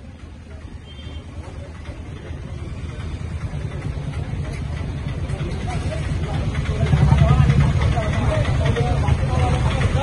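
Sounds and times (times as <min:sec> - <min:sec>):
murmur of street crowd: 0:00.0 - 0:10.0
vehicle engine rumbling: 0:00.0 - 0:10.0.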